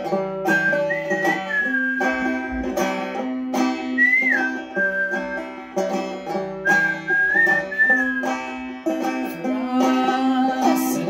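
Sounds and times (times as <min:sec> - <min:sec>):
banjo picking: 0:00.0 - 0:11.0
person whistling a melody: 0:00.4 - 0:02.9, 0:03.8 - 0:05.8, 0:06.6 - 0:08.6.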